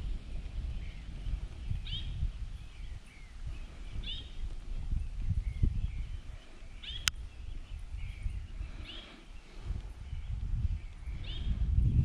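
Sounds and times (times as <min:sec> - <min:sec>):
bird calls: 0:00.2 - 0:11.7.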